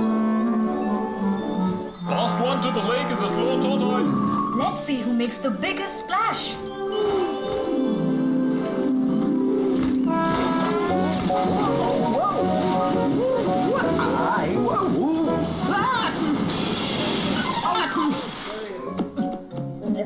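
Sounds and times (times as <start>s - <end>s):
cartoon background music: 0.0s - 18.1s
splash sound effect: 9.7s - 14.4s, 15.6s - 18.8s.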